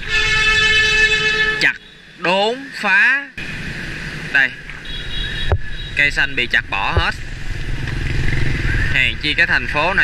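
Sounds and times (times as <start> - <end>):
motorbike engine passing: 7.2 - 10.0.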